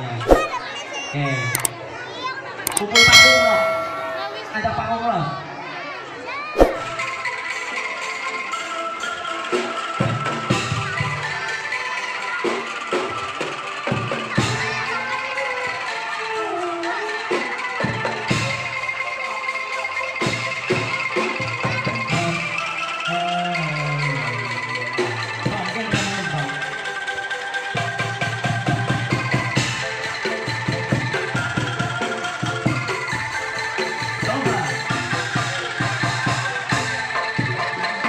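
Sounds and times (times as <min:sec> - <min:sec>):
bamboo angklung ensemble melody: 0:02.8 - 0:04.5.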